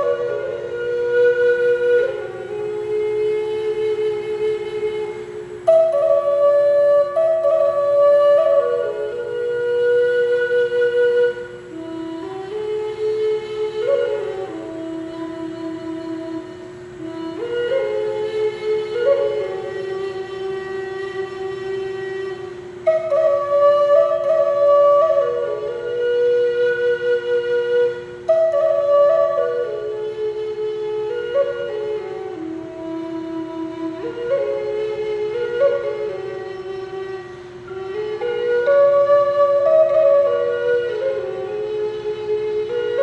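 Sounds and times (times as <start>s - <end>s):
flute holding long note: 0.0s - 43.0s.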